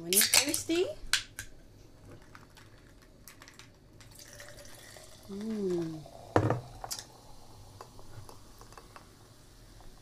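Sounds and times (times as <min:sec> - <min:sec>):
faint fizzing: 0:02.2 - 0:10.0
liquid trickling: 0:04.0 - 0:10.0
soda can cracked open: 0:06.5 - 0:07.1.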